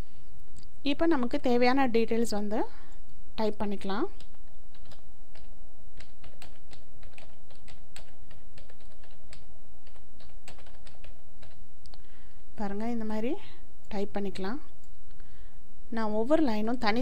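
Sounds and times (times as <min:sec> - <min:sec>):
steady low hum: 0:00.0 - 0:17.0
typing on computer keyboard: 0:04.2 - 0:11.6.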